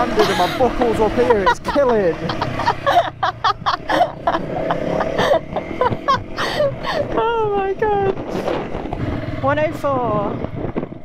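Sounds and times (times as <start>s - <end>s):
woman laughing: 0.0s - 7.8s.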